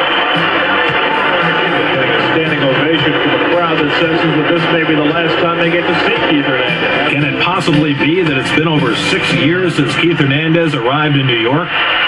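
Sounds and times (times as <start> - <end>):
person speaking: 1.2 - 11.5.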